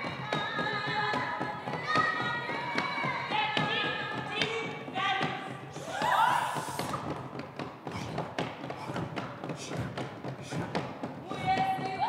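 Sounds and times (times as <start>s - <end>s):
women singing in harmony: 0.0s - 4.4s
wooden hand drum strokes: 0.0s - 12.0s.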